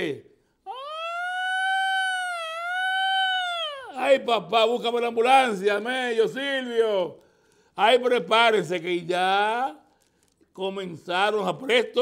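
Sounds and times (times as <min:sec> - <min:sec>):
high-pitched wailing call: 0:00.7 - 0:04.0.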